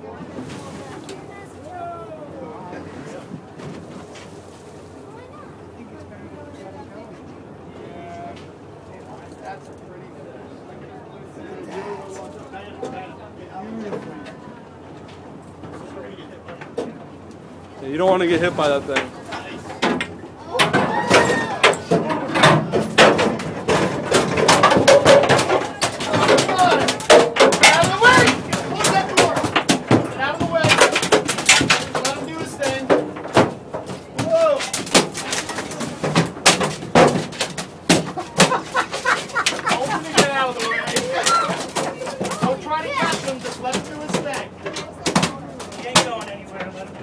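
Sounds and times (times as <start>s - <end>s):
people's excited voices: 0.8s - 3.1s, 18.0s - 23.0s, 24.1s - 31.0s, 34.1s - 35.8s, 38.2s - 44.1s
fish thrashing on boat deck: 18.2s - 46.4s.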